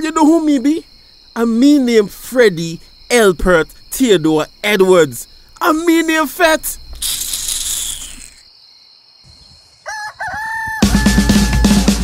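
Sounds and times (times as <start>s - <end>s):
rooster crowing: 9.7s - 12.0s.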